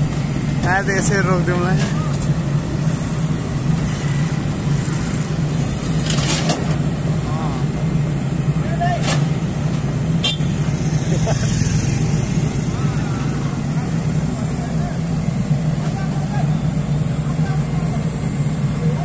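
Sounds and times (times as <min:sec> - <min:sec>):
excavator diesel engine running: 0:00.0 - 0:19.0.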